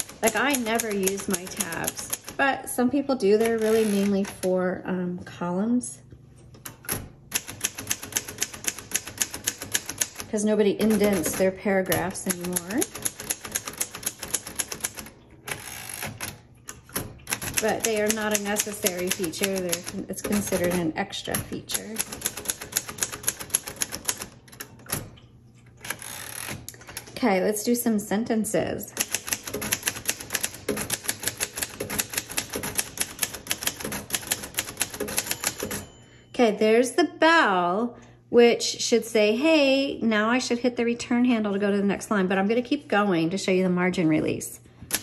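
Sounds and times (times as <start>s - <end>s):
typewriter carriage return rasp: 0.0s - 2.5s, 3.2s - 4.6s, 6.7s - 25.0s, 25.8s - 27.4s, 29.0s - 35.9s
typewriter keystrokes clacking: 0.0s - 2.5s, 3.2s - 4.5s, 6.7s - 25.1s, 29.0s - 35.9s.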